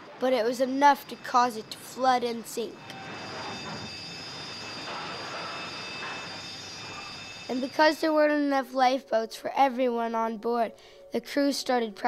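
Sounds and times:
faint high tones: 0:00.0 - 0:08.0.

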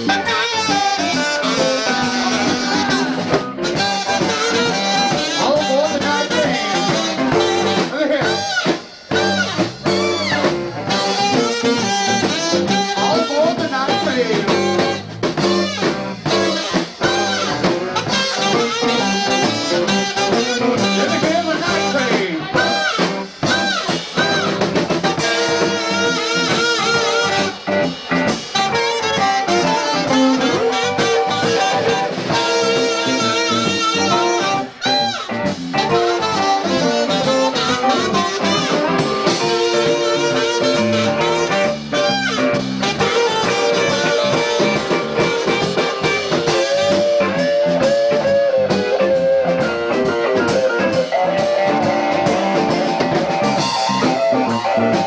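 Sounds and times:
drum kit: 0:00.0 - 0:55.0
electric guitar: 0:00.0 - 0:55.0
saxophone: 0:00.0 - 0:55.0.

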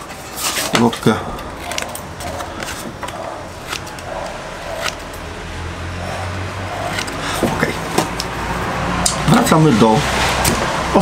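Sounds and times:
low steady hum: 0:00.0 - 0:08.5
scissors snipping paper card: 0:03.7 - 0:05.1, 0:06.9 - 0:07.2.

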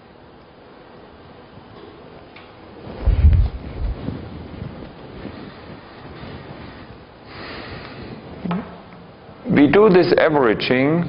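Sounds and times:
wind rumble on microphone: 0:02.8 - 0:08.5.

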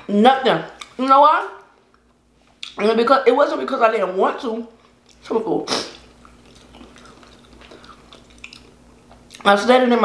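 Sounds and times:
faint steady hum: 0:00.0 - 0:10.0
quiet chewing: 0:05.9 - 0:09.5.

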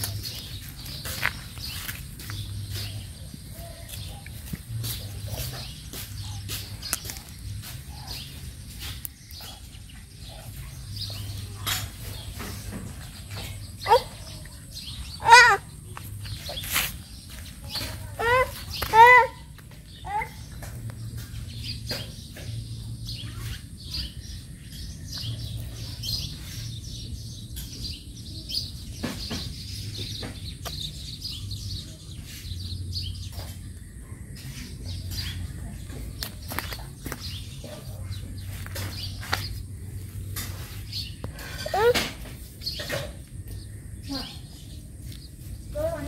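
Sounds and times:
small birds chirping: 0:00.0 - 0:46.0.

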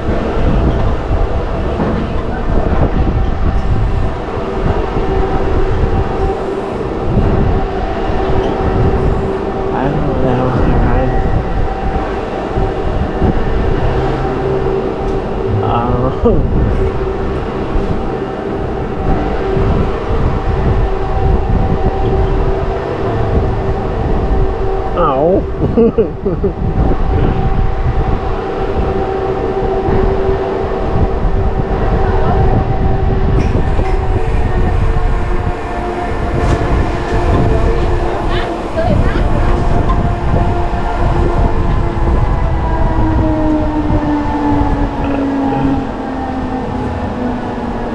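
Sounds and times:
constant mechanical hum: 0:00.0 - 0:47.9
machinery whine: 0:00.0 - 0:47.9
wheels rumbling on rail: 0:00.0 - 0:47.9.

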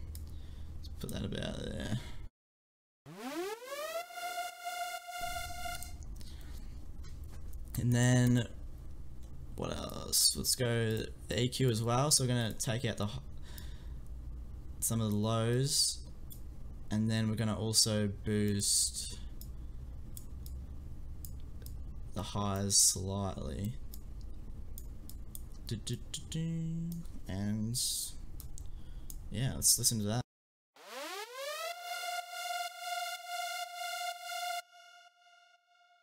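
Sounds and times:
distorted synth lead note: 0:03.1 - 0:06.0, 0:30.8 - 0:36.0
low steady hum: 0:05.0 - 0:30.1
computer mouse clicks: 0:23.6 - 0:25.7.

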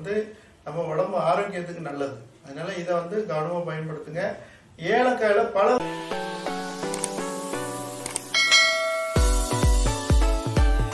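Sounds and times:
plucked background music: 0:05.8 - 0:10.9
high bell chime: 0:08.3 - 0:09.6.

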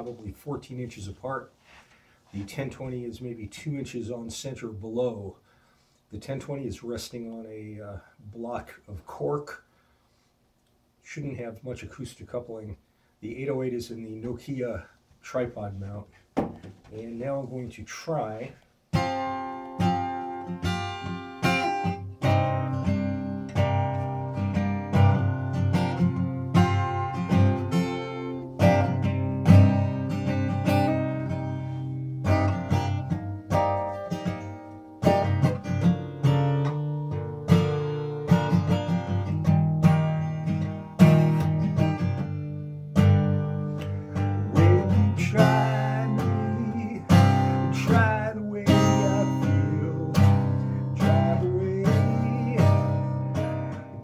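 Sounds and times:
acoustic guitar strumming chords: 0:18.2 - 0:54.0
man singing: 0:44.2 - 0:54.0.

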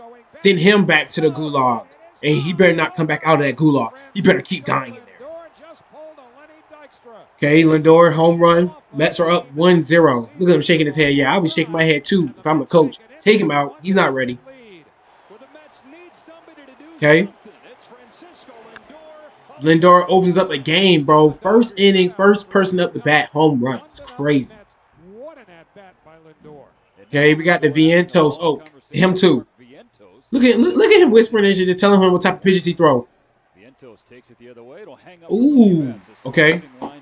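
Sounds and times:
faint speech: 0:00.0 - 0:31.1
faint sports commentator speaking: 0:00.0 - 0:33.0, 0:33.6 - 0:37.0.

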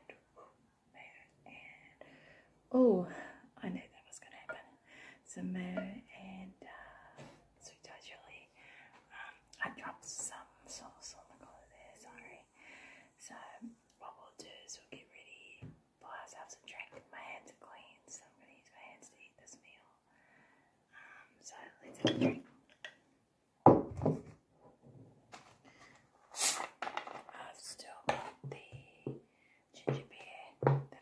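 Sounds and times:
woman whispering: 0:01.0 - 0:02.0, 0:02.7 - 0:12.6, 0:13.2 - 0:20.0, 0:21.3 - 0:22.4, 0:27.3 - 0:29.1, 0:29.8 - 0:31.0.

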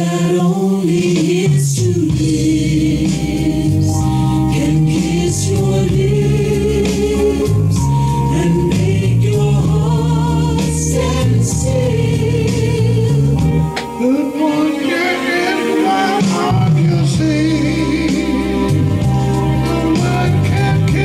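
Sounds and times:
choir-like backing vocals: 0:00.0 - 0:21.0
slow soul ballad backing track: 0:00.0 - 0:21.0
steady bass line: 0:00.8 - 0:21.0.

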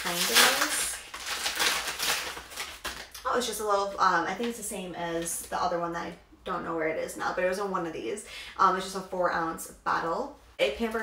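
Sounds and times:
plastic packaging crinkling: 0:00.0 - 0:03.2.

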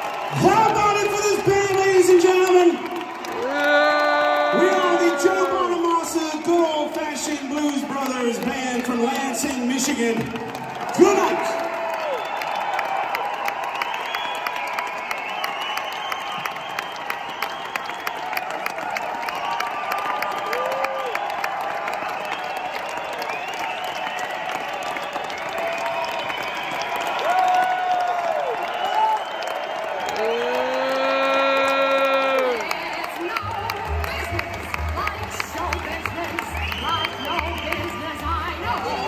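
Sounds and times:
loud long shout: 0:00.0 - 0:06.0, 0:18.8 - 0:22.8, 0:24.1 - 0:32.8
audience applauding and cheering: 0:00.0 - 0:39.0.

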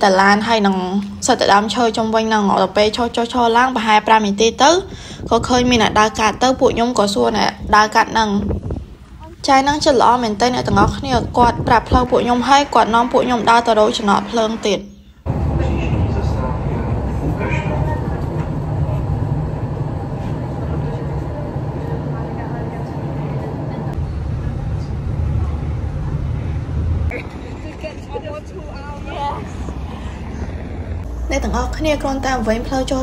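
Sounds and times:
transit vehicle rumble: 0:04.9 - 0:33.0
faint voices: 0:15.6 - 0:30.6.

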